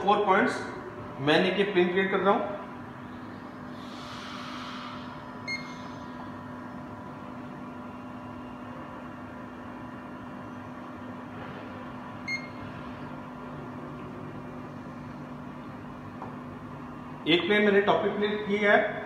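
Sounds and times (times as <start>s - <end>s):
machine hum: 0.0s - 19.0s
short high beeps: 5.4s - 5.9s, 12.2s - 12.6s.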